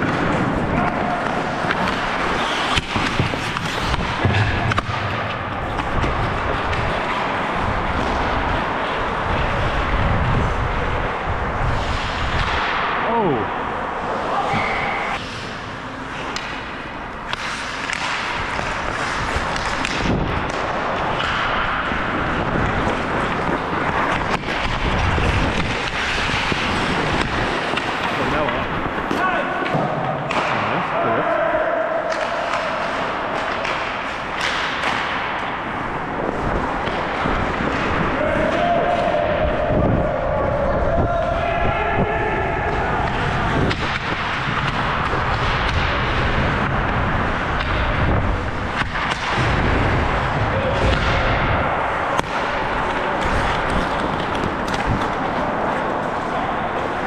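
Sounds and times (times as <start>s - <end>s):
hockey sticks knocking puck: 0.0s - 13.0s, 14.1s - 30.8s, 32.0s - 40.0s, 42.6s - 57.0s
rush of air and skating: 0.0s - 57.0s
players shouting: 0.2s - 3.2s, 27.9s - 33.9s, 37.7s - 44.0s.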